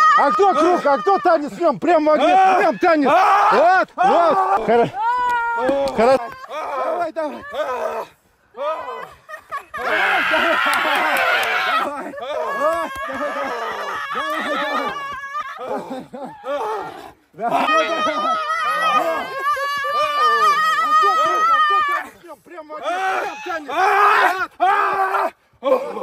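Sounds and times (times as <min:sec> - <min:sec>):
people chanting and shouting: 0:00.0 - 0:26.0.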